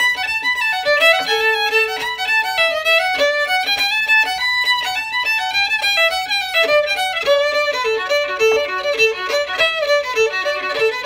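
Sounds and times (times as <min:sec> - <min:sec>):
solo fiddle playing a reel: 0:00.0 - 0:11.0.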